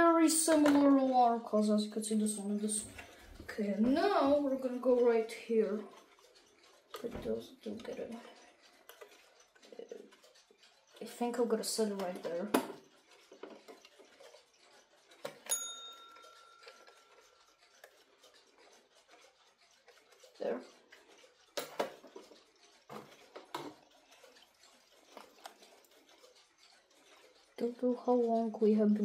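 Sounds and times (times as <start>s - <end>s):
knocks and clicks of clocks: 0.0s - 29.0s
alarm clock bell ding: 15.4s - 17.4s.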